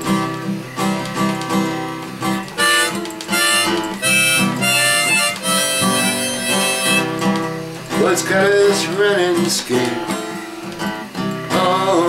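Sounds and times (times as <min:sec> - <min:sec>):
strummed acoustic guitar: 0:00.0 - 0:12.0
harmonica: 0:02.6 - 0:07.4.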